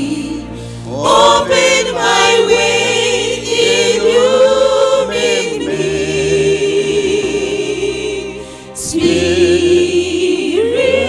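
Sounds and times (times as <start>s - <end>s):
group singing a hymn: 0.0s - 11.0s.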